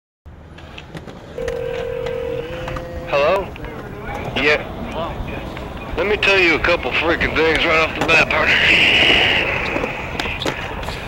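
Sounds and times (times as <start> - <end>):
phone line click: 1.4 - 3.0
telephone ringing tone: 1.4 - 3.4
low phone line hum: 1.4 - 5.0.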